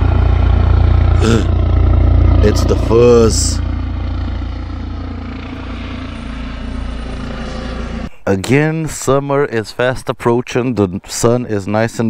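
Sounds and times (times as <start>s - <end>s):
helicopter rotor beating: 0.0s - 8.2s.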